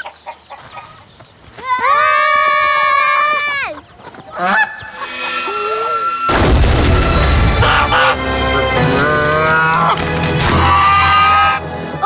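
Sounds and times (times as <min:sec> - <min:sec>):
goose honking: 0:04.3 - 0:05.4, 0:07.5 - 0:11.8.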